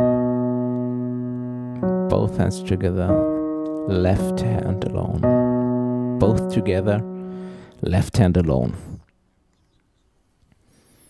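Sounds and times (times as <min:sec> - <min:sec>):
piano chords: 0:00.0 - 0:08.1.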